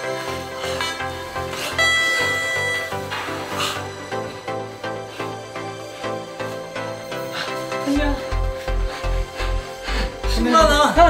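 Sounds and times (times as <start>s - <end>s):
electronic dance music: 0.0s - 11.0s
bright high tone: 1.7s - 3.5s.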